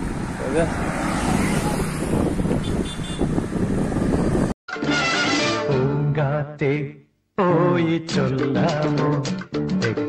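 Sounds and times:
road traffic noise: 0:00.0 - 0:04.6.

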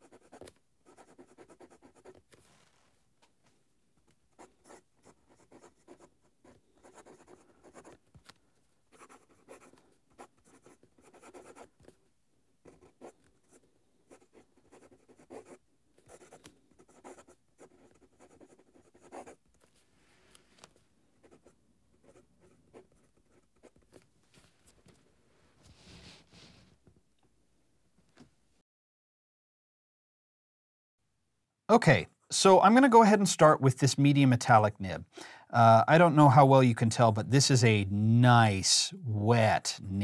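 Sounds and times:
fountain pen scratching on paper: 0:00.0 - 0:02.4, 0:04.3 - 0:12.0, 0:12.6 - 0:19.7, 0:21.2 - 0:24.0.

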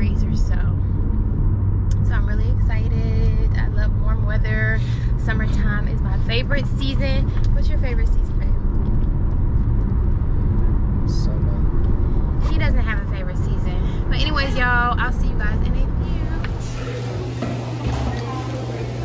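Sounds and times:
woman talking: 0:00.0 - 0:00.8, 0:01.9 - 0:08.6, 0:12.4 - 0:16.8
car road and engine rumble: 0:00.0 - 0:19.0.

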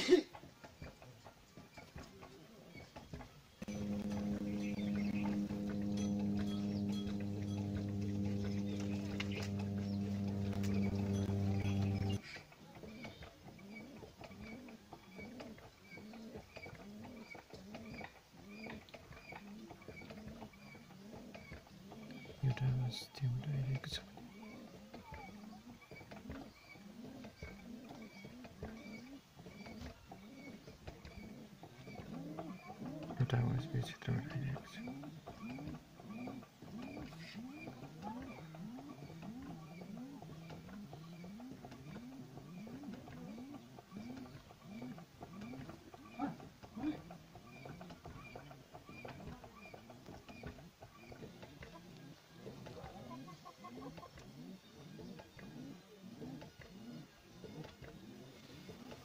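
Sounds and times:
chickens clucking: 0:00.0 - 0:59.0
pigeon cooing: 0:03.6 - 0:22.9, 0:23.6 - 0:59.0.

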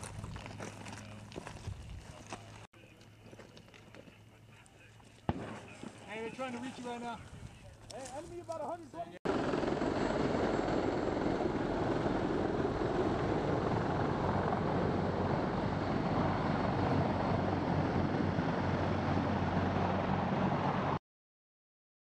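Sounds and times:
helicopter flying low past: 0:09.3 - 0:21.0.

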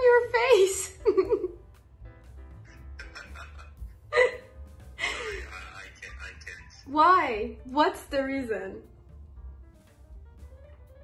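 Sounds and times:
woman laughing: 0:00.8 - 0:01.6, 0:03.0 - 0:05.6.

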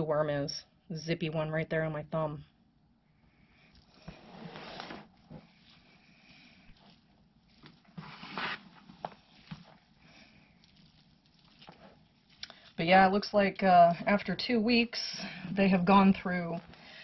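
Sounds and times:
hands rustling through compost: 0:03.8 - 0:13.1.

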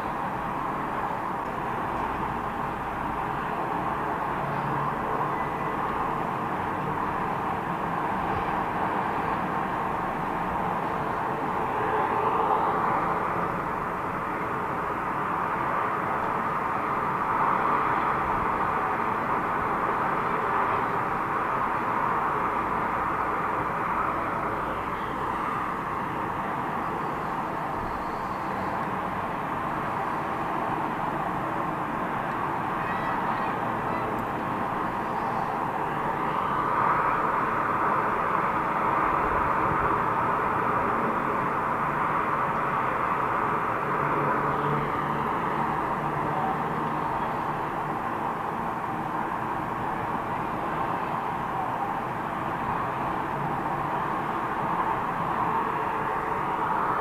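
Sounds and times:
highway traffic: 0:00.0 - 0:57.0.

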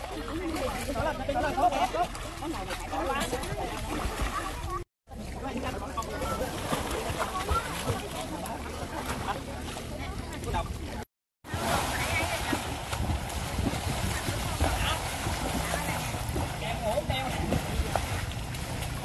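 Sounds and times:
water splashing in a pool: 0:00.0 - 0:19.0
children's voices: 0:03.4 - 0:04.8, 0:06.0 - 0:10.9.

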